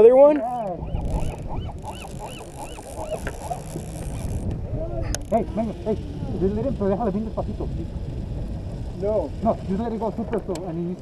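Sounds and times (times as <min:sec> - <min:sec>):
birds calling: 0:00.0 - 0:04.5
low steady rumble: 0:00.0 - 0:11.0.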